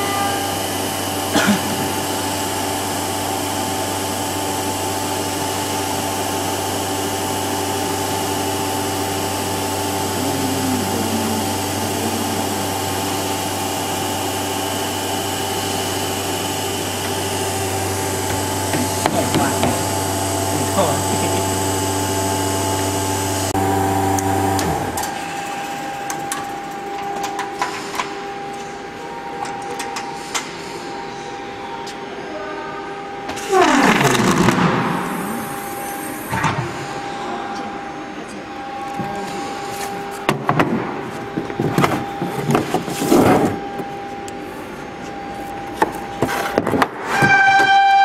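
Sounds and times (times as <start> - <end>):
machine hum: 0.0 - 48.0.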